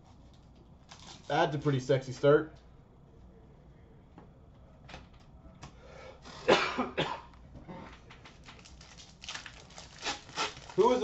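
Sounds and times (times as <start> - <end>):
person coughing: 6.4 - 7.8
cards and wrappers rustling: 8.2 - 11.0.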